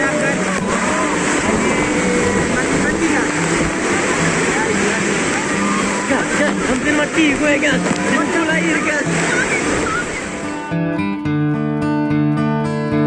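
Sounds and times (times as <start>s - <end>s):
voices: 0.0s - 10.5s
waterfall rushing into pool: 0.0s - 10.8s.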